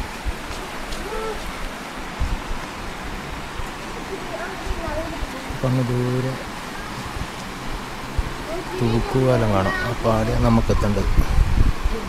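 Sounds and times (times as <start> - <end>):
steady rushing noise: 0.0 - 12.0
wind buffeting microphone: 0.0 - 12.0.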